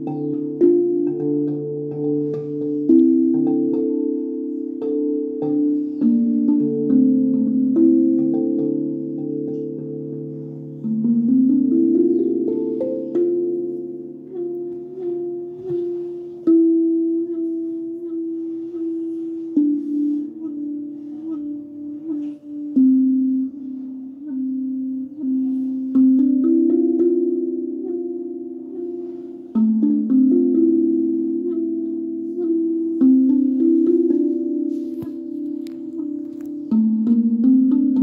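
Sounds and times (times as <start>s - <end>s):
steel tongue drum notes: 0.0s - 38.0s.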